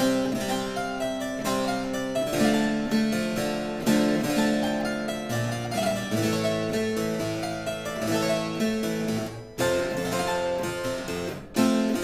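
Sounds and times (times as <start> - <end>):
harpsichord piece: 0.0 - 12.0.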